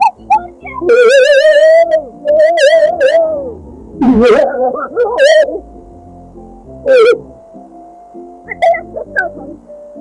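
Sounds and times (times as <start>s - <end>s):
soft background music: 0.0s - 10.0s
loud wavering warble: 0.8s - 7.8s.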